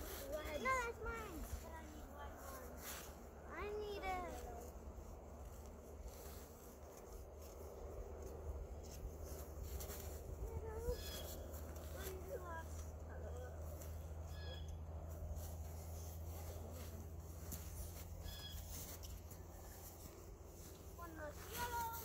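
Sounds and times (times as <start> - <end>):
soft children's voices: 0.0 - 5.1, 9.8 - 14.0, 20.9 - 22.0
low steady rumble: 0.0 - 22.0.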